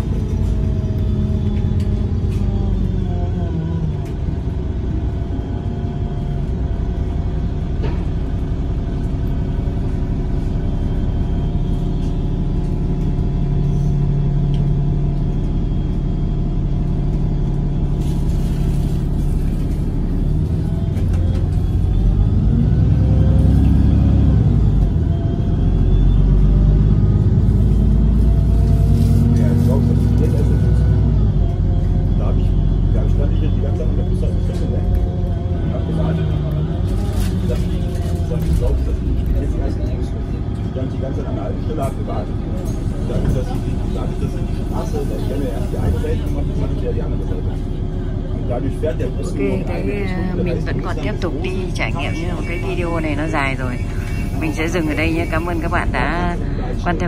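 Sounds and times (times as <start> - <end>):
bus engine rumble: 0.0 - 57.0
drivetrain whine: 0.0 - 57.0.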